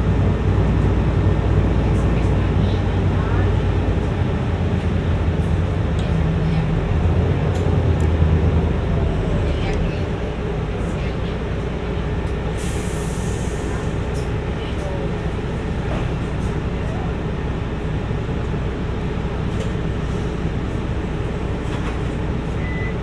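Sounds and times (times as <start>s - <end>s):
bus engine drone: 0.0s - 23.0s
bus engine idling: 0.0s - 23.0s
air brake hiss: 12.6s - 13.9s.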